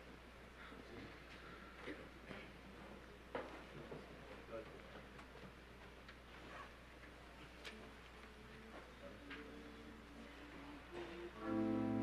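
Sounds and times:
faint held music notes: 7.6 - 12.0.

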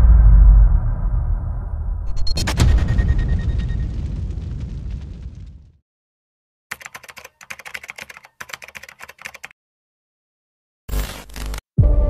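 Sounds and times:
keyboard key clicks: 6.7 - 9.5.

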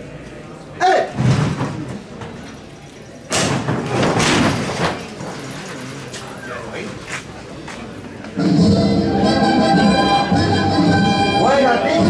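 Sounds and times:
man shouting: 0.8 - 1.2
sudden loud thud: 1.2 - 1.9.

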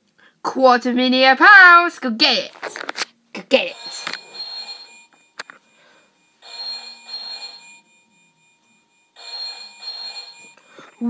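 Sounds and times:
electronic telephone ringing effect: 3.7 - 11.0.

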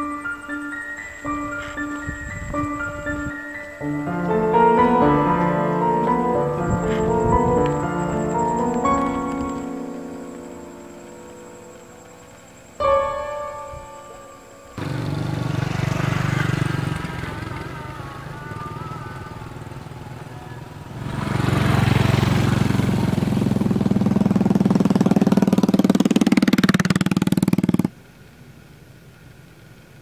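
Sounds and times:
horror film score: 0.0 - 27.9.

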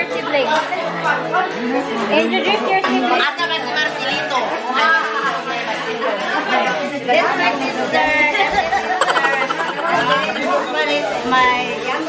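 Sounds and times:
group of people chattering: 5.7 - 12.0.

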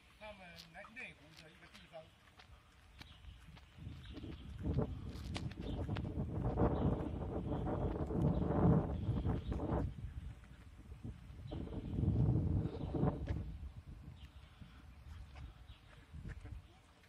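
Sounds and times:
footsteps on paving: 0.0 - 17.0
wind buffeting microphone: 2.4 - 17.0.

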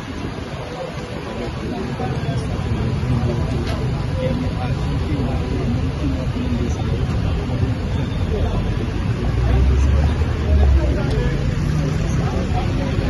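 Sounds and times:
crowd chatter: 0.0 - 13.0
vehicle engine rumbling: 0.0 - 13.0.

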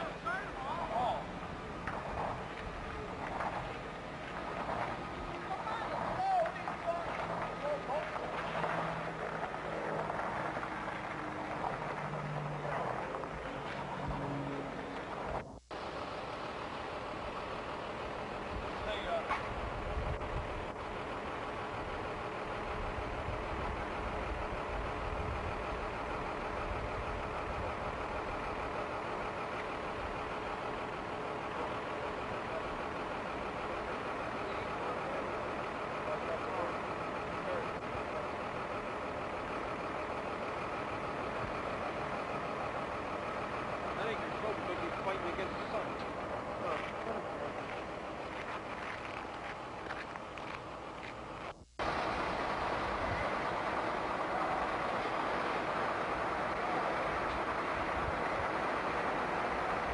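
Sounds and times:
indistinct voices: 0.0 - 15.6.

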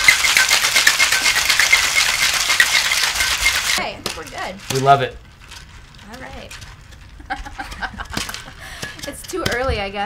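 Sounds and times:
giggling and laughter: 7.2 - 8.8.

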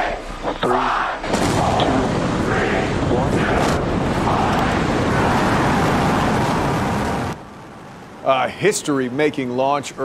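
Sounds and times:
loud rocket engine roar: 1.2 - 7.4.

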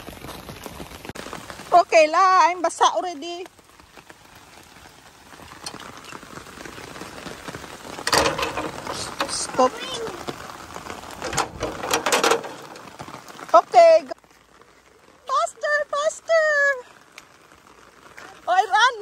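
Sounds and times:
rain on pavement: 0.0 - 19.0
metal gate clattering: 8.1 - 9.6, 11.2 - 13.0.

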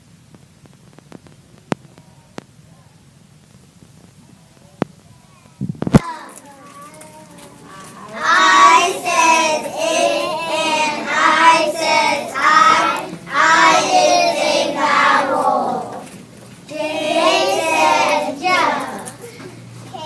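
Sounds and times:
children singing together: 7.6 - 20.0.

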